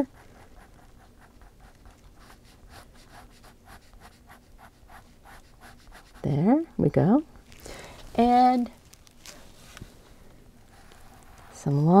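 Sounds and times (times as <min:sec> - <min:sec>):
pen scratching on paper: 0:00.0 - 0:06.3.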